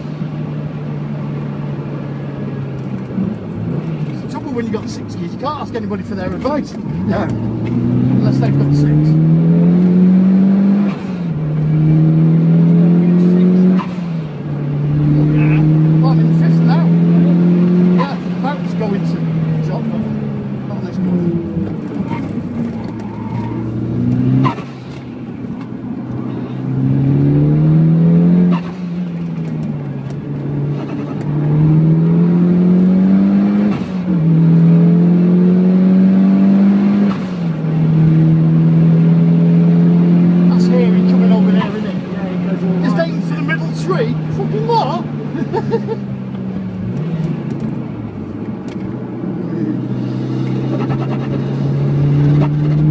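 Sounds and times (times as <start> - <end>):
car engine revving through gears: 0.0 - 52.9.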